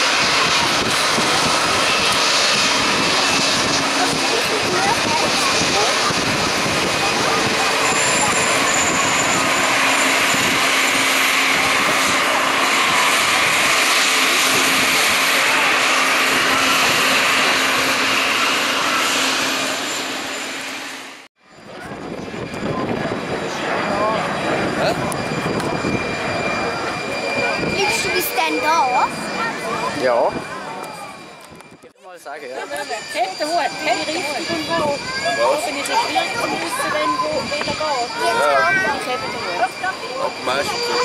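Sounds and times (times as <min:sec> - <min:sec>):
faint voices: 0:00.0 - 0:19.4, 0:21.5 - 0:41.0
jet engines taxiing: 0:00.0 - 0:41.0.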